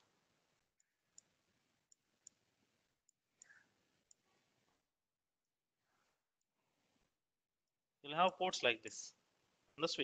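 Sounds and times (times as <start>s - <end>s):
faint computer mouse clicks: 0.8s - 1.3s, 3.0s - 4.2s.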